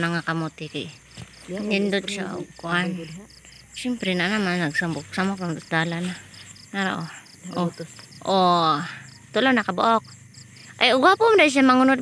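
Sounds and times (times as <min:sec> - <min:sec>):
person speaking: 0:00.0 - 0:10.1
crickets chirping: 0:00.0 - 0:12.0.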